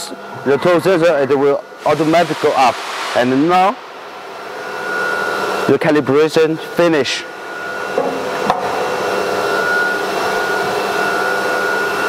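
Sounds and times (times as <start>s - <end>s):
router machine hiss and whine: 0.0s - 12.0s.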